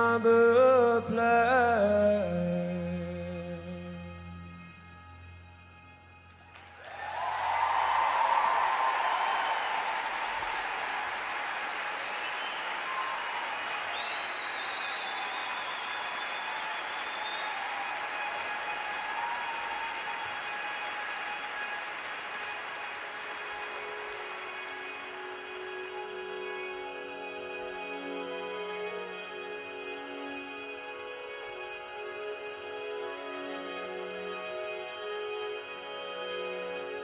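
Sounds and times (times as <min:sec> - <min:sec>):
audience applauding: 0:06.3 - 0:26.7.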